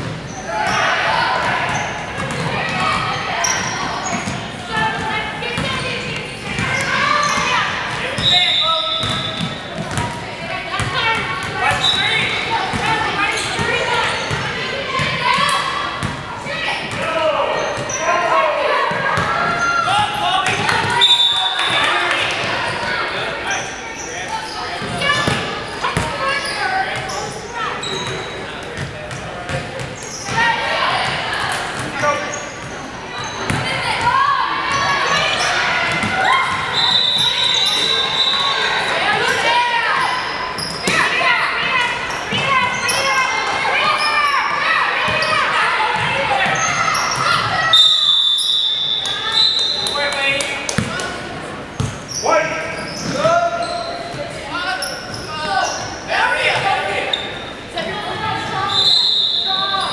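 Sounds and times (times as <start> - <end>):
voices echoing in hall: 0.0 - 59.9.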